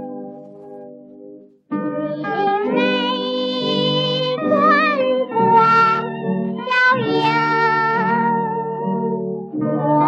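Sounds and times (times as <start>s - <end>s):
high female voice singing: 2.2s - 6.0s, 6.6s - 8.4s.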